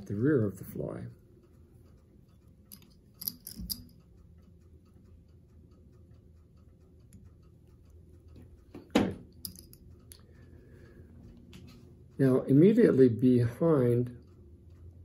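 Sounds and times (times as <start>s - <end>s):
faint regular ticking: 0.0s - 15.0s
small handling clicks: 2.4s - 4.2s, 8.3s - 10.3s.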